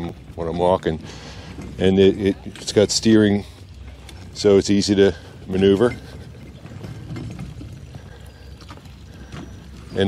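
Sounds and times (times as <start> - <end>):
wagon wheels rolling on wood: 4.0 - 10.0.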